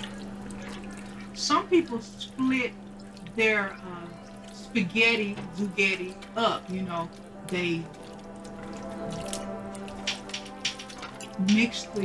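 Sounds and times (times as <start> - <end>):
background music: 2.5 - 12.0
spatula stirring food in pan: 4.1 - 11.7.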